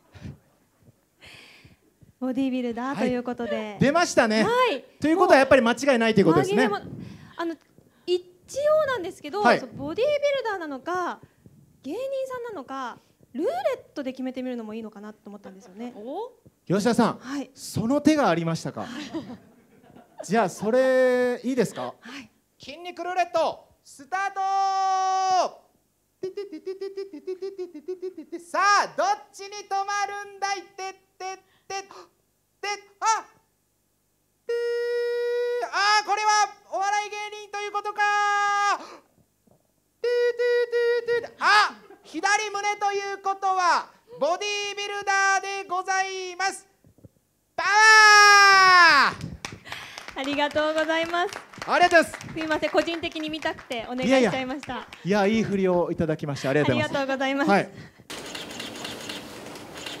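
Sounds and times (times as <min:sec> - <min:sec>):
faint steady hum: 0:00.0 - 1:00.0
man imitating sound effects: 0:24.0 - 0:33.5, 0:34.4 - 0:36.8, 0:40.0 - 0:42.9
camera shutters clicking: 0:58.1 - 1:00.0.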